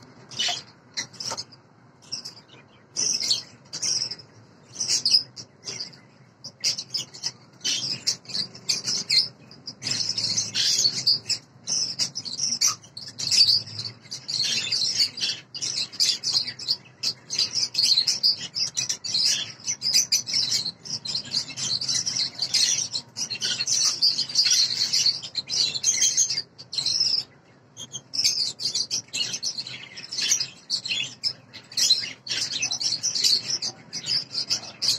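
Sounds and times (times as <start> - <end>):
lovebirds chattering: 0.0 - 34.9.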